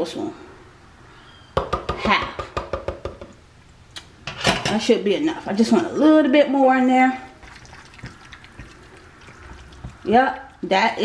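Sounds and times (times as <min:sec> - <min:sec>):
spoon stirring wet food: 0:07.2 - 0:10.8.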